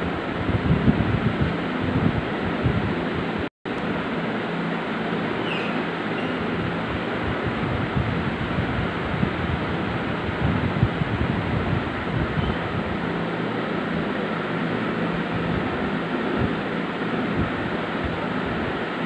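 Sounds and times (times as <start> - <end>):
wind buffeting microphone: 0.0 - 3.5, 6.4 - 19.0.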